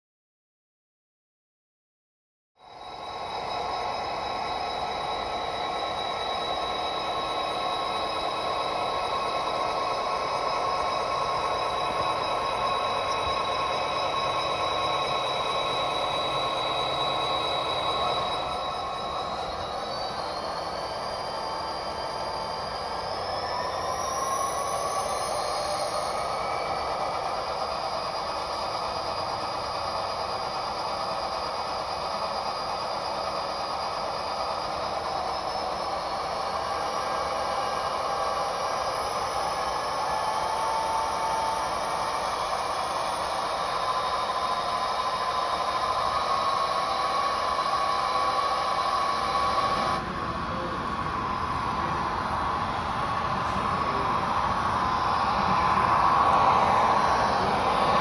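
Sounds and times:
model diesel engine sound: 2.6s - 58.0s
whine climbing in pitch: 2.6s - 58.0s.

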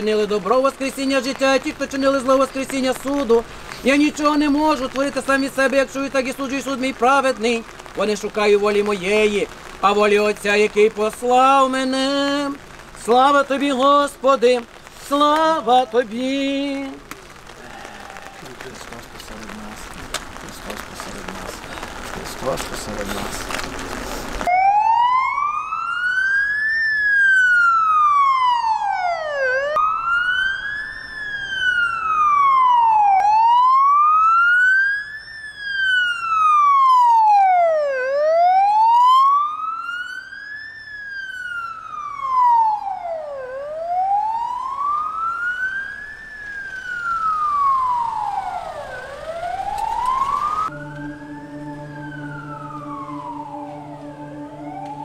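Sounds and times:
vehicle siren wailing: 0.0s - 55.0s
steady low drone: 50.6s - 55.0s.

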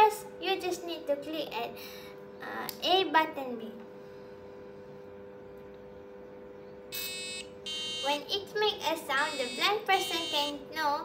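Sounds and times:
faint two-tone hum: 0.0s - 11.0s
loud buzzy electronic tone: 6.9s - 8.3s, 9.1s - 10.7s.

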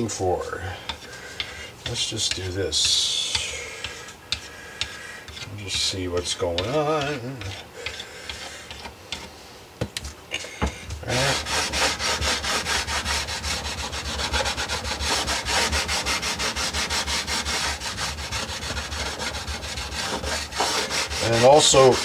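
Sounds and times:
sandpaper rubbing on wood: 11.0s - 22.0s.

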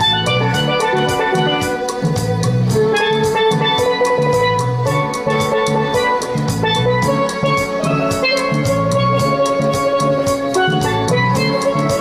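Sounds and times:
repeating bass line: 0.0s - 12.0s
steady drum beat: 0.0s - 12.0s
steel pan melody: 0.0s - 12.0s.

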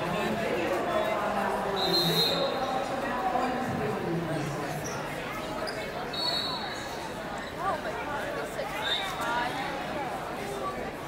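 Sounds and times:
distant voices and chatter: 0.0s - 11.0s.

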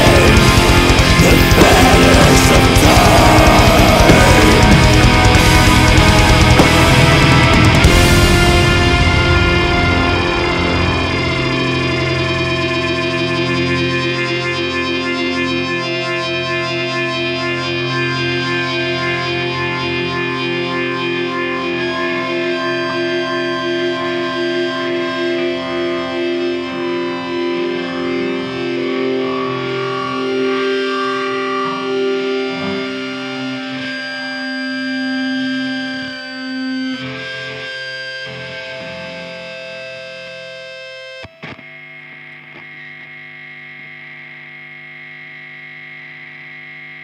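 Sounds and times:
held chord: 0.0s - 40.2s
distorted electric guitar chords: 0.0s - 47.0s.

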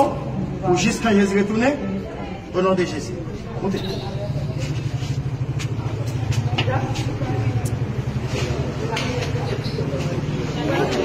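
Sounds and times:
faint muffled voices: 0.0s - 11.0s.

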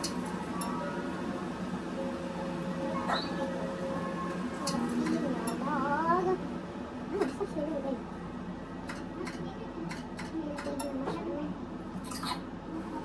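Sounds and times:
faint indistinct speech: 8.9s - 13.0s.

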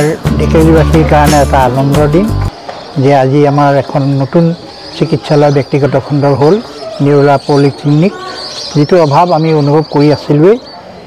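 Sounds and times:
man speaking: 0.0s - 2.4s, 3.0s - 8.2s
bird chirping: 1.2s - 11.0s.

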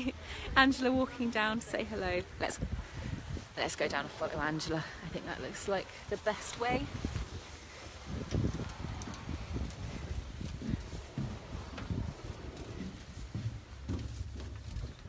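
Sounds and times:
footsteps on floating pontoon: 5.1s - 15.0s.

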